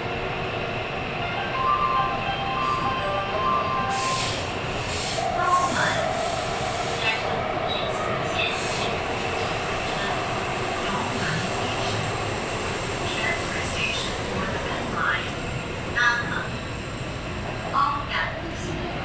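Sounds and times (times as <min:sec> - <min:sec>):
train rumbling through tunnel: 0:00.0 - 0:19.0.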